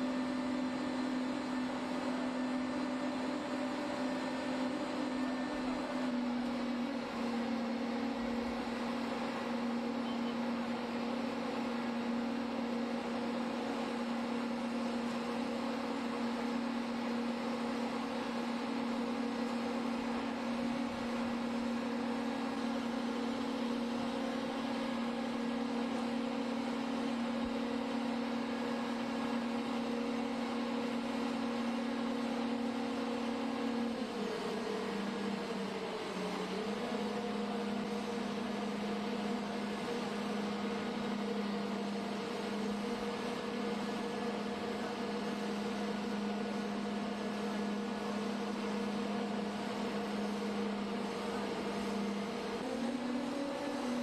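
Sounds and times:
pump engine running under load: 0.0 - 54.0.

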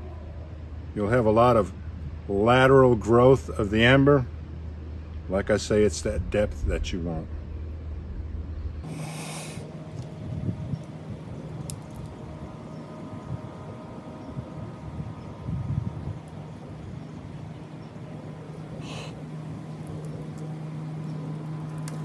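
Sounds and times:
faint steady hum: 0.0 - 22.0
person blowing puffs of breath: 8.8 - 9.7, 18.8 - 19.2.

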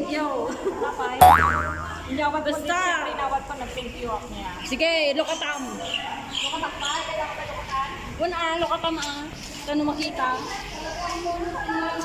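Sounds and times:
cartoon boing sound effect: 1.2 - 2.8.

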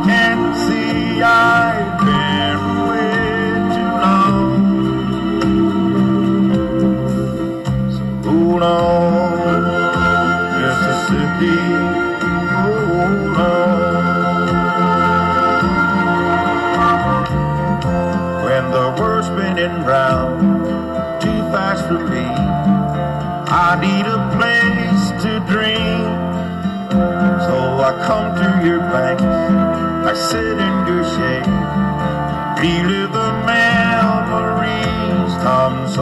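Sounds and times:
country band playing: 0.0 - 36.0
guitar: 0.0 - 36.0.

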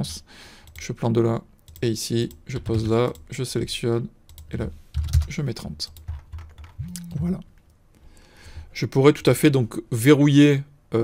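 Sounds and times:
person speaking: 0.0 - 7.6, 8.4 - 11.0
computer keyboard keystrokes: 1.7 - 3.3, 4.3 - 6.9.

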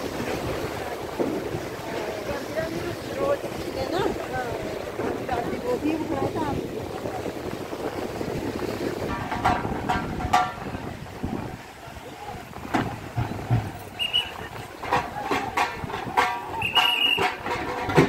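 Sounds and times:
crowd talking: 0.0 - 18.0
river rushing: 0.0 - 18.0.

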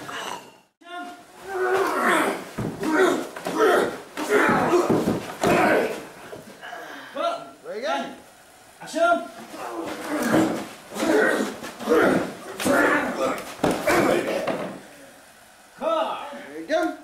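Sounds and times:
men grunting and shouting: 1.4 - 7.4, 9.4 - 14.8.

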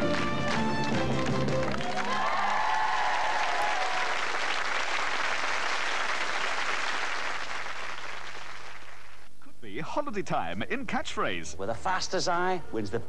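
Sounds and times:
studio audience applauding: 0.0 - 9.3.

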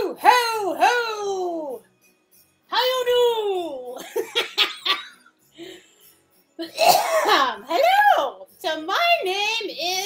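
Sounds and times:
person laughing: 4.0 - 5.8.

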